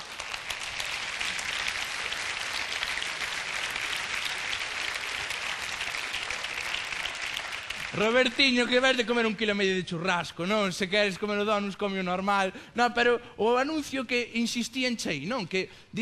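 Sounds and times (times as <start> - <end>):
studio audience applauding: 0.0 - 9.4.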